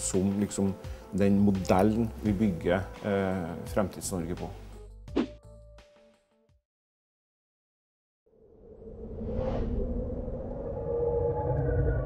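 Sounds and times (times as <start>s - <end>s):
deep rumble: 8.5s - 12.0s.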